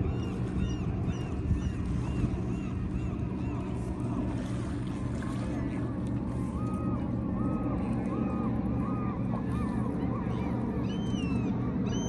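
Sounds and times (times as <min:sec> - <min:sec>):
birds calling: 0:09.9 - 0:12.0.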